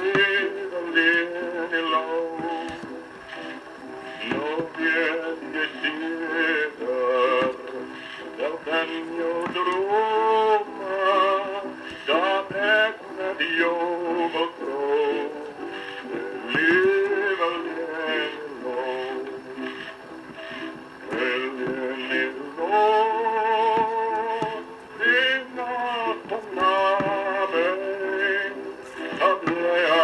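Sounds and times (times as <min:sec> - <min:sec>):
man singing: 0:00.0 - 0:03.5, 0:04.2 - 0:20.0, 0:21.0 - 0:30.0
musical accompaniment: 0:00.0 - 0:30.0.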